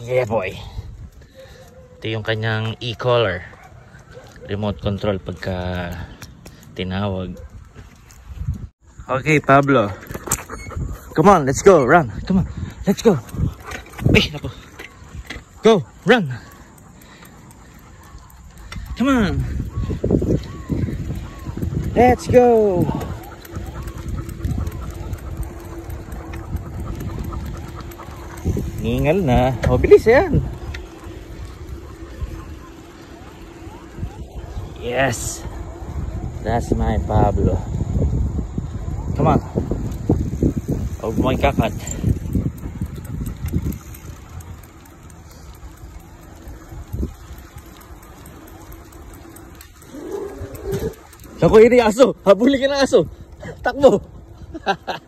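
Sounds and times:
wind rumbling over microphone: 0.0s - 2.1s, 3.8s - 9.1s, 9.9s - 16.5s, 17.5s - 55.0s
bicycle tyres rolling on concrete: 0.0s - 55.0s.

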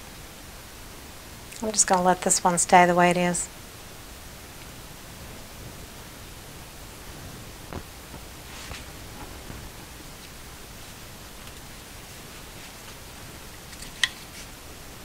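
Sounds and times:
room noise hiss: 0.0s - 15.0s
soft rustle: 4.9s - 14.6s.

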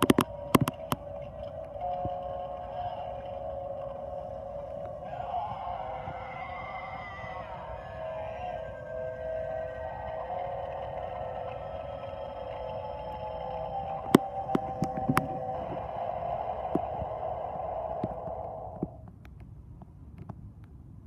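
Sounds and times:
eerie droning soundtrack: 0.0s - 19.1s.

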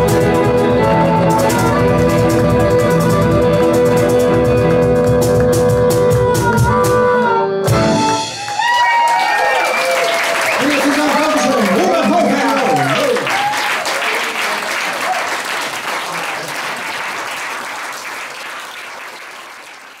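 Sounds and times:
audience applauding: 8.0s - 20.0s.

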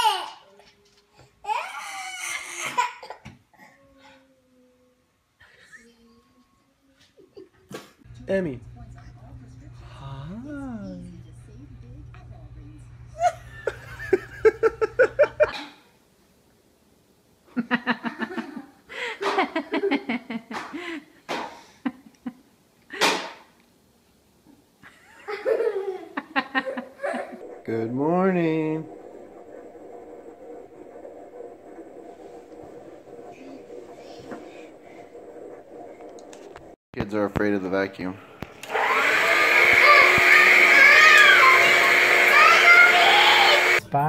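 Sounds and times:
vacuum cleaner running: 8.1s - 15.6s, 25.1s - 36.8s, 37.6s - 43.8s
person laughing: 13.2s - 15.6s, 24.9s - 27.4s.

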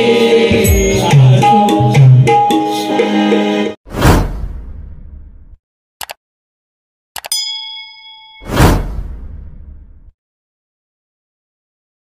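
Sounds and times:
bell ding: 0.6s - 2.7s, 7.3s - 8.8s
whoosh with deep boom: 3.9s - 5.6s, 8.5s - 10.1s.

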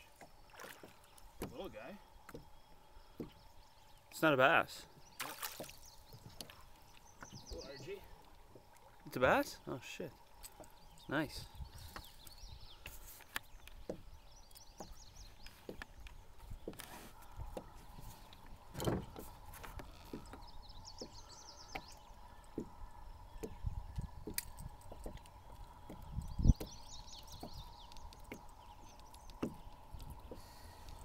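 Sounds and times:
bird singing: 0.0s - 31.0s
faint clicks and knocks: 27.3s - 31.0s.

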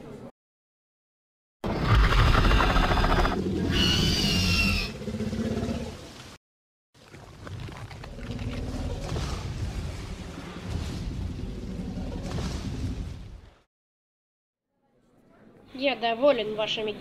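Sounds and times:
dinosaur roar with screech: 1.7s - 5.9s.

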